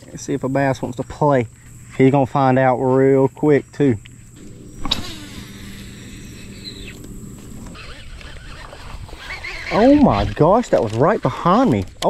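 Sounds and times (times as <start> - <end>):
steady low hum: 0.0 - 10.5.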